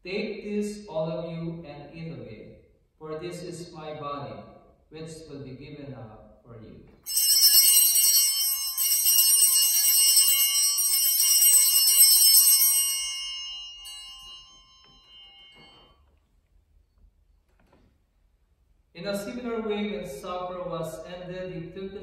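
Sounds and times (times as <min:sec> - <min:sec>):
altar bells ringing: 0:07.1 - 0:16.3.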